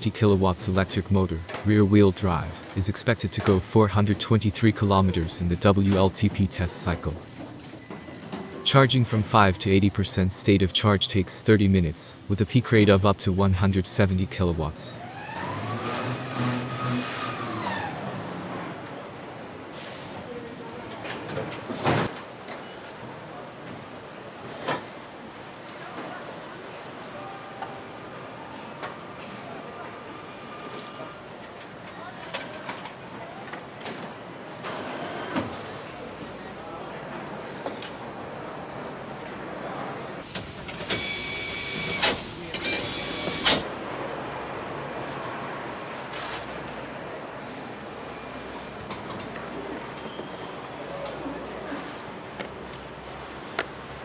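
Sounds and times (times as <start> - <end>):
high-pitched electronic warning beep: 40.9 - 43.6.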